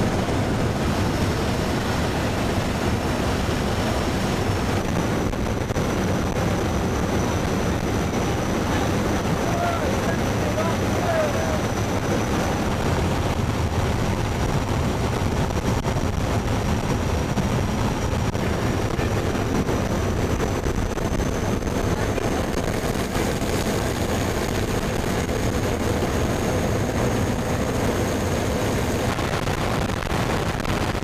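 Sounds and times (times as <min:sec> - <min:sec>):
aircraft engines and propellers drone: 0:00.0 - 0:31.0.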